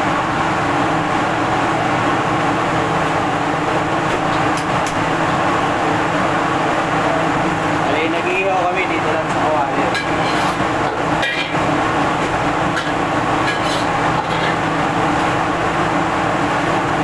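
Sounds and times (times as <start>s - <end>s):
gas burners roaring: 0.0s - 17.0s.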